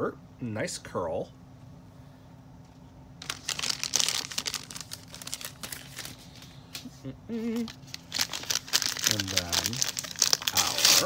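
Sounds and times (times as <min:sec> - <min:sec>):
packaging wrapper crinkling: 0:03.2 - 0:06.9, 0:07.6 - 0:11.0.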